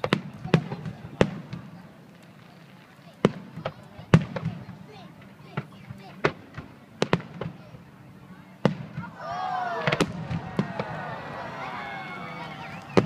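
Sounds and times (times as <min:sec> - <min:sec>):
fireworks bursting: 0:00.0 - 0:07.6, 0:09.8 - 0:13.0.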